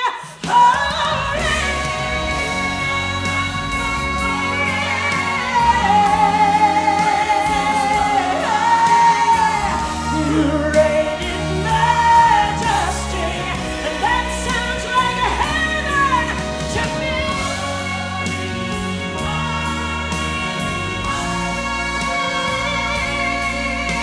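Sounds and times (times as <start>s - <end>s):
woman singing gospel: 0.0s - 24.0s
instrumental accompaniment: 0.4s - 24.0s.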